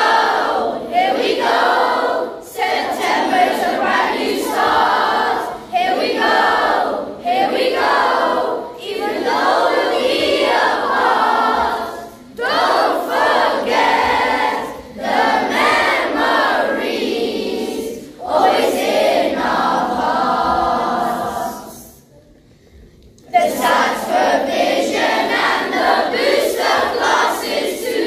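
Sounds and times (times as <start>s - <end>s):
children's choir singing: 0.0s - 22.1s, 23.2s - 28.0s.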